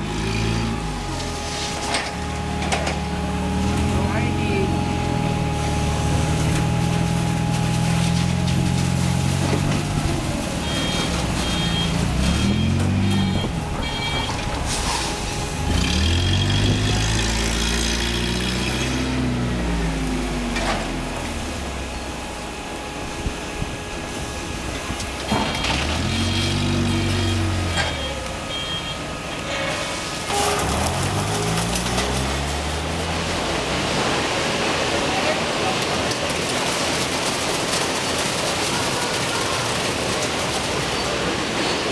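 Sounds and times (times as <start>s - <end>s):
vehicle engine revving: 0.0s - 28.8s, 30.2s - 34.6s
high repeated beeping: 10.6s - 16.9s.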